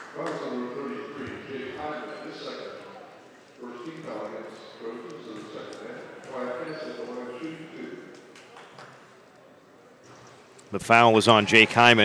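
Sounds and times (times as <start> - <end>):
people's voices in a gym: 0.0 - 12.0.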